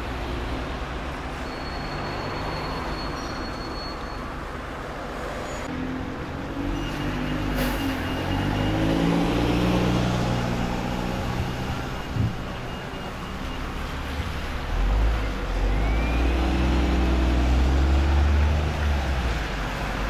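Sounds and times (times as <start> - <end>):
bus diesel engines: 0.0 - 20.0.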